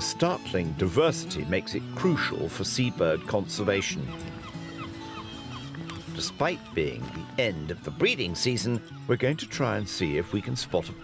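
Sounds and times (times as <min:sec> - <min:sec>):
seabirds calling: 0:00.0 - 0:11.0
soft music with held notes: 0:00.0 - 0:11.0.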